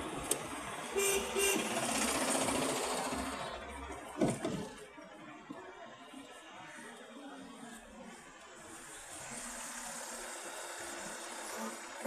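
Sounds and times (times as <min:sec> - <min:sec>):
city traffic from inside vehicle: 0:00.0 - 0:12.0
vehicle horn honks: 0:01.0 - 0:01.8.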